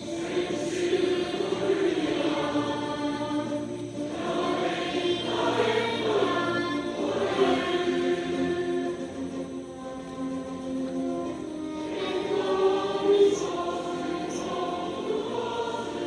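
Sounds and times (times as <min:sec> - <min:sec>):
girls singing together: 0:00.0 - 0:16.0.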